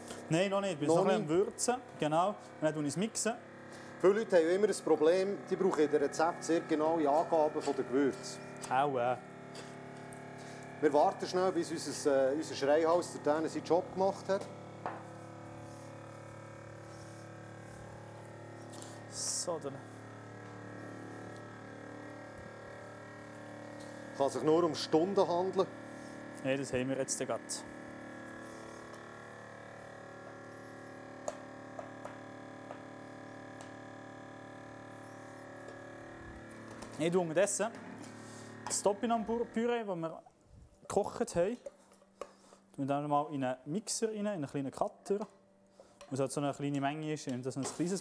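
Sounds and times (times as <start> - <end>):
vacuum sealer pump humming: 0.0 - 40.2.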